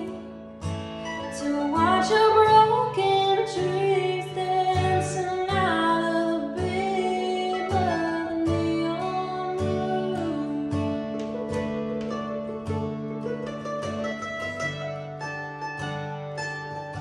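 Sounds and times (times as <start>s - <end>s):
woman singing: 0.0s - 0.4s, 1.2s - 12.2s
mandolin playing: 0.0s - 17.0s
strummed acoustic guitar: 0.0s - 17.0s.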